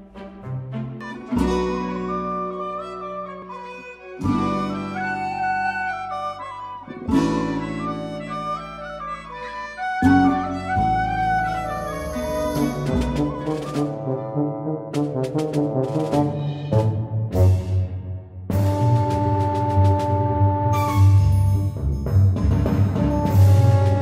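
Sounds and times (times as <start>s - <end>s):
instrumental background music: 0.0s - 24.0s.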